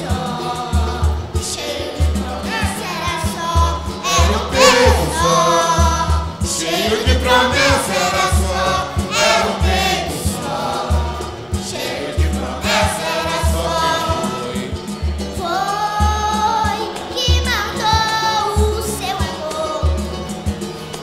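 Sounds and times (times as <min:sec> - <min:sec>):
voices singing together: 0:00.0 - 0:20.1
cavaquinho strumming: 0:00.0 - 0:21.0
deep drum beat: 0:03.6 - 0:15.4.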